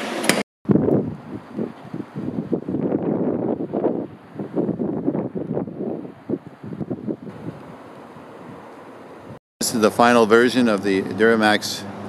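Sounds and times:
wind buffeting microphone: 0.7 - 9.4.

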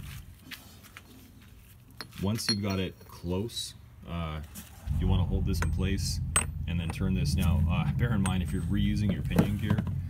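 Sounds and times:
low steady background: 1.2 - 10.0.

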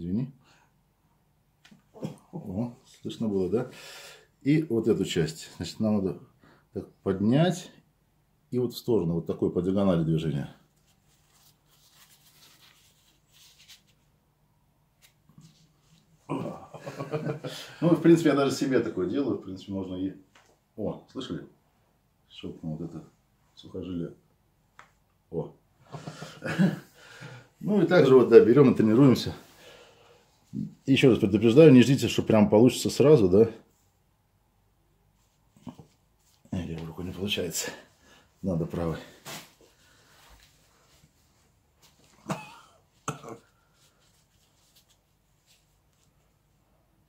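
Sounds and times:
tissue rubbing on ear and hair: 10.6 - 14.2, 15.0 - 16.2, 35.0 - 37.6, 38.7 - 42.2, 43.5 - 46.6.

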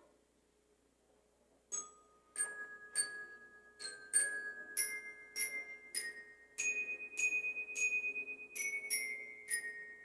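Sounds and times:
glockenspiel notes ringing: 1.7 - 10.0.

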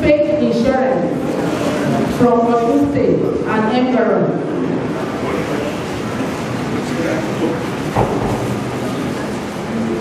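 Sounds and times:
murmur of voices: 0.0 - 10.0
room noise: 0.0 - 10.0
low thump: 8.0 - 8.5.

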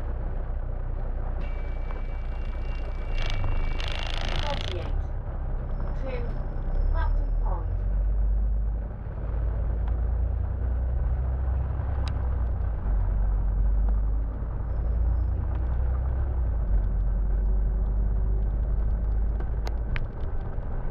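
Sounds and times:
bus engine and road rumble: 0.0 - 20.9.

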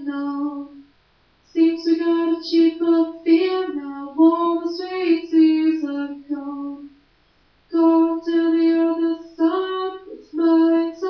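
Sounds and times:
woman singing unaccompanied: 0.0 - 0.9, 1.5 - 7.0, 7.7 - 11.0.

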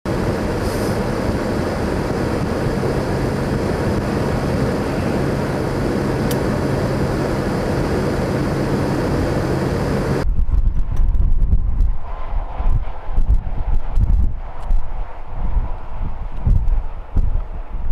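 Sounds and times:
highway traffic noise: 0.1 - 17.9
low engine hum: 0.1 - 17.9.

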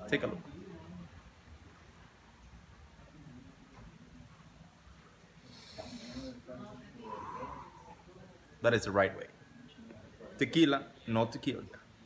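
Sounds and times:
man breathing in through nose: 5.5 - 6.4.

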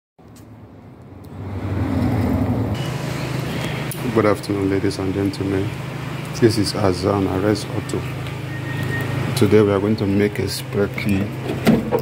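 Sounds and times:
vehicle engine rumbling: 0.2 - 12.0.

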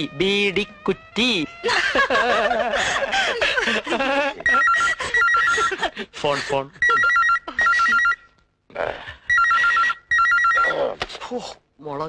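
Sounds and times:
people laughing: 1.6 - 8.2
telephone ringing: 4.4 - 5.8, 6.8 - 8.4, 9.3 - 10.9.

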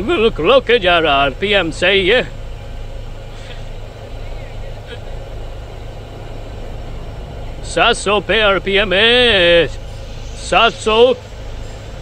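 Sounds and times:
man speaking: 0.0 - 2.4, 7.6 - 9.8, 10.4 - 11.2
car engine idling: 0.0 - 12.0.

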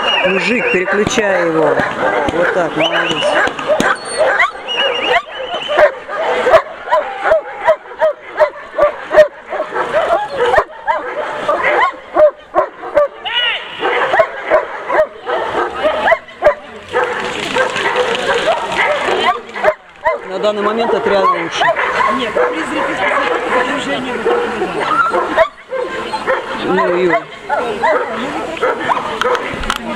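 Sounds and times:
dog barking: 0.5 - 29.5.

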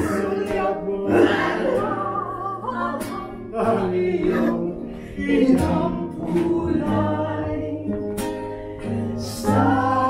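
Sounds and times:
old man singing into microphone: 0.0 - 2.3, 3.5 - 8.2
musical backing: 0.0 - 10.0.

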